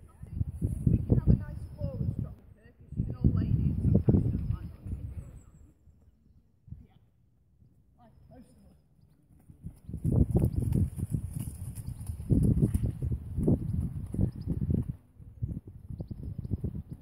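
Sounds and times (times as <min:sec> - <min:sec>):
pony hooves thudding: 0:09.3 - 0:15.9.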